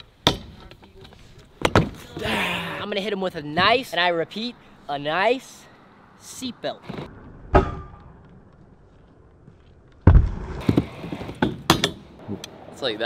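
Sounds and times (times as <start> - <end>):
scooter landing thud: 1.6 - 2.3
wheels rolling on wood: 8.2 - 11.7.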